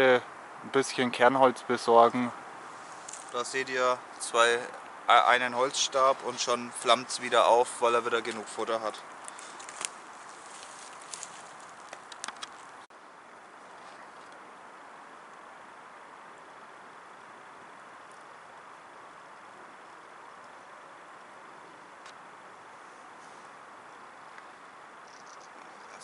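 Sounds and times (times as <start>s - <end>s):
wood crackling and popping: 3.0s - 3.5s, 9.2s - 12.9s.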